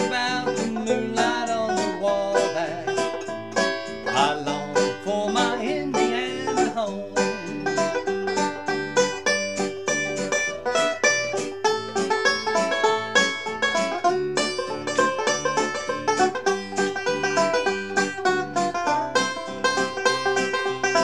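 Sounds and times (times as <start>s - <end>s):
banjo picking swing tune: 0.0s - 21.0s.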